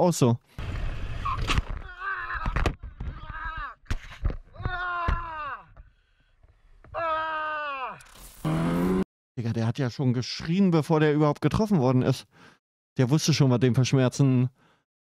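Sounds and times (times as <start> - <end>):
man yelling and screaming: 1.2 - 3.8, 4.6 - 5.8, 6.9 - 8.0.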